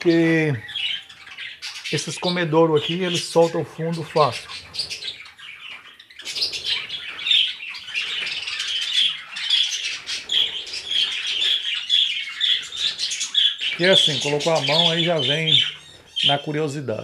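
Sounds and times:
budgerigars chirping and warbling: 0.0 - 17.0.

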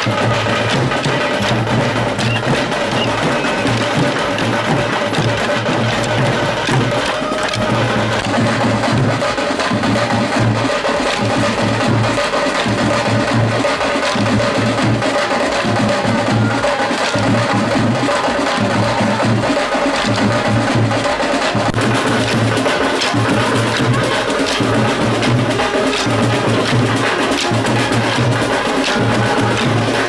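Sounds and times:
drums keeping a steady beat: 0.0 - 30.0
wind instruments: 0.0 - 30.0
bamboo sticks clicking together: 2.1 - 8.4, 19.8 - 20.3, 21.7 - 30.0.

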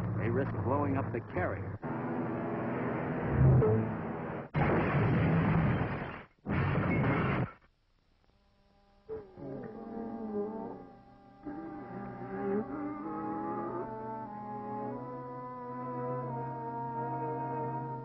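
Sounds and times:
orchestral music with wavering tones: 9.4 - 18.0.

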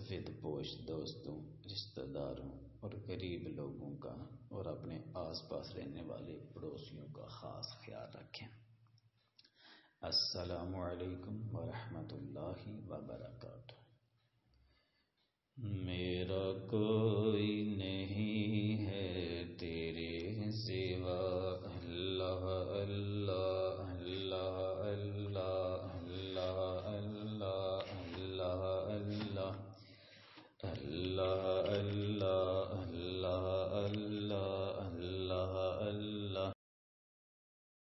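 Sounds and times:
person chanting: 0.0 - 8.4, 10.0 - 13.7, 15.6 - 29.8, 30.6 - 36.6.

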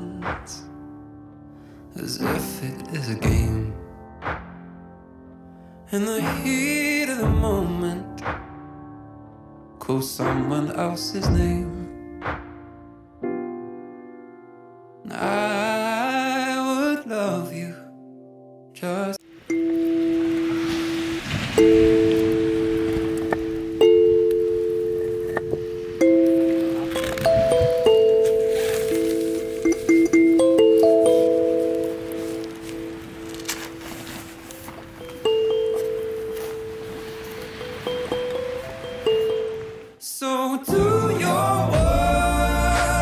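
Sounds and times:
campfire crackling: 19.3 - 40.0.

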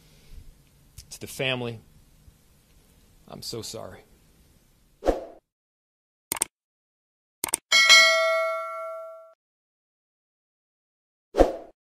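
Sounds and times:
double mouse click: 6.3 - 6.5
notification bell ding: 7.7 - 9.4.

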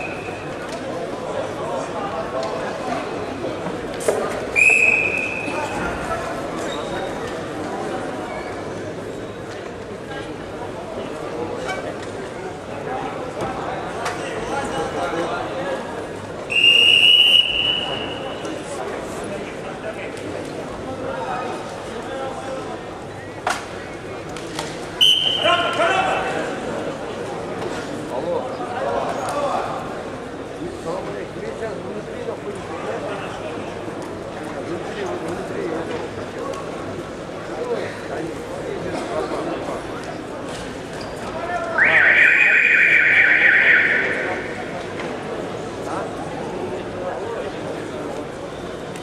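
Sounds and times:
murmur of voices in hall: 0.0 - 49.0
whistle blast: 4.6 - 5.6, 16.5 - 18.4, 25.0 - 25.6, 41.8 - 44.6.

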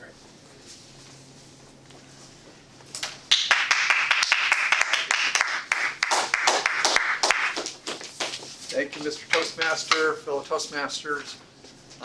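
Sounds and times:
low room hum: 0.0 - 12.0
small audience applauding: 3.0 - 8.4.

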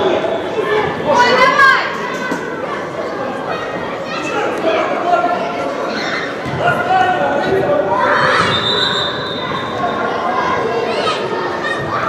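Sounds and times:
boys shouting in echoing hall: 0.0 - 12.0.

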